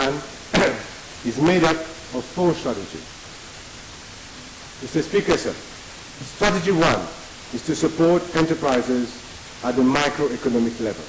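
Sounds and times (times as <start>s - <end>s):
man speaking: 0.0s - 3.1s, 4.8s - 11.0s
steady background hiss: 0.0s - 11.0s.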